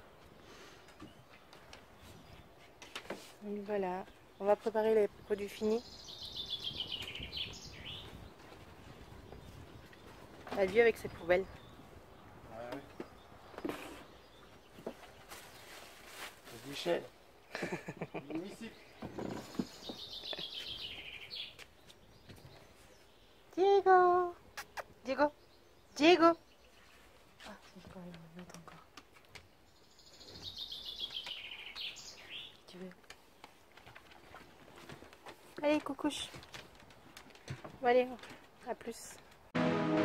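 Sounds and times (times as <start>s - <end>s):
plastic bag and boxes rustling: 14.9s - 17.0s.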